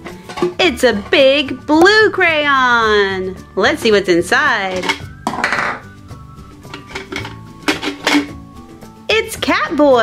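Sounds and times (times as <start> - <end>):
plastic container rattling scrape: 0.0 - 0.6, 6.7 - 8.4
soft background music: 0.0 - 10.0.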